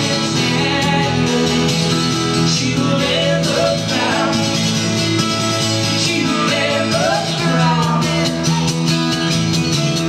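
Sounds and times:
woman singing: 0:00.0 - 0:01.8, 0:05.9 - 0:08.8
acoustic guitars strumming: 0:00.0 - 0:10.0.

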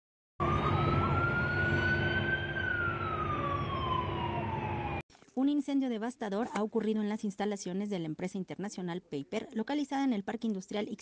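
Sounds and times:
emergency siren wailing: 0:00.4 - 0:05.0.

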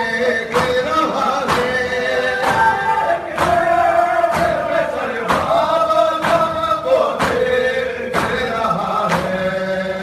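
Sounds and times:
men chanting in unison: 0:00.0 - 0:10.0.

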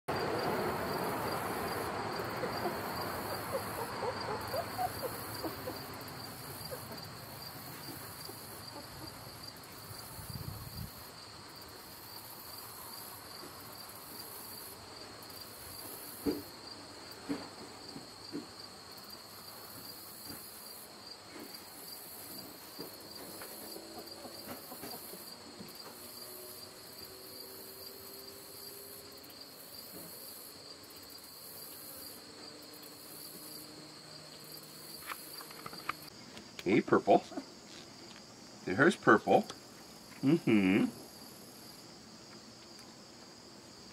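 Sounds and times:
insects trilling: 0:00.1 - 0:43.9.

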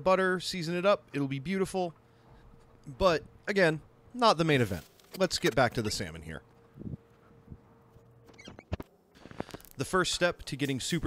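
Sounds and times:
thin steady hum: 0:00.0 - 0:11.0.

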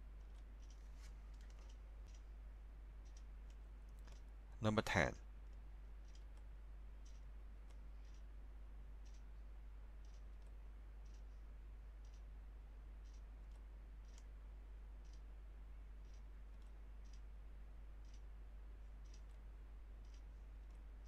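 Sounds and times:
low electrical hum: 0:00.0 - 0:21.0
faint light clicks: 0:18.9 - 0:20.9.

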